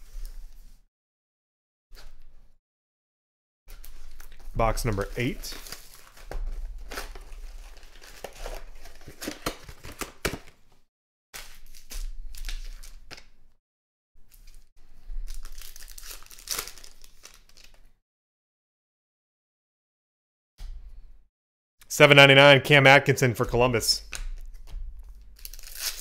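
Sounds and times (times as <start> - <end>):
card wrappers crinkling and tearing: 3.8 - 10.5, 11.4 - 13.3, 14.3 - 17.9, 24.4 - 26.0.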